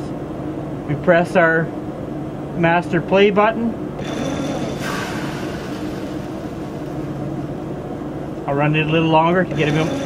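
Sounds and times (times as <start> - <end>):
mechanical hum of metering system: 0.0 - 10.0
hydraulic hiss: 4.0 - 7.2.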